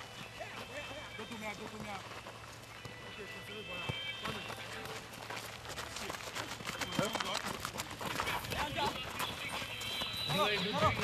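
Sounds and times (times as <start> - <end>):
running footsteps on hard ground: 0.0 - 11.0.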